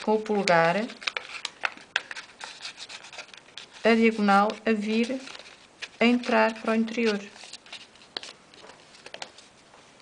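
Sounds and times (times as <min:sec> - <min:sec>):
paper crackling and rustling: 0:00.0 - 0:09.6.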